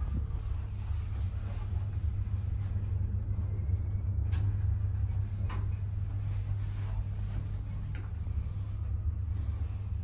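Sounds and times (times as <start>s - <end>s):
elevator car rumbling in shaft: 0.0s - 10.0s.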